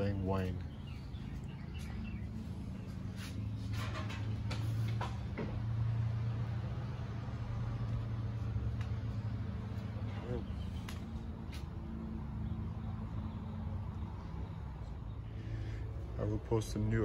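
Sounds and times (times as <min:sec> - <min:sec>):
low engine drone: 0:00.0 - 0:17.0.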